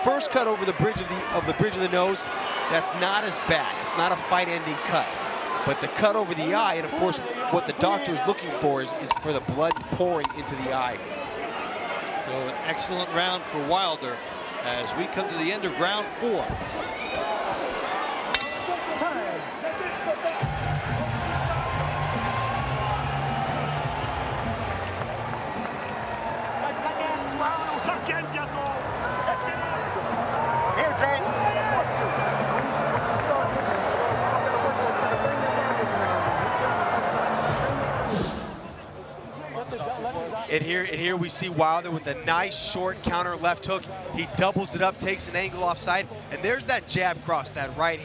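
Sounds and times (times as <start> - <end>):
arena crowd voices: 0.0 - 48.0
boxing bell strike: 18.4 - 18.8.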